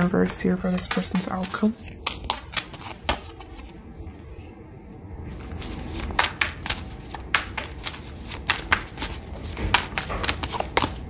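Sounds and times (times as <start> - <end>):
cards being shuffled: 0.6 - 3.8, 5.3 - 11.0.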